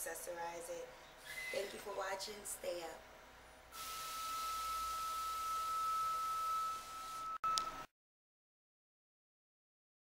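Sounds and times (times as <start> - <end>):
electronic hiss: 3.7 - 7.4
high-pitched whine: 3.8 - 7.9.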